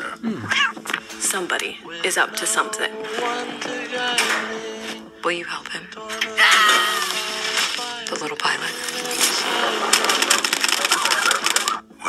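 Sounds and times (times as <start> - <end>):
fast clattering clicks: 8.8 - 11.8.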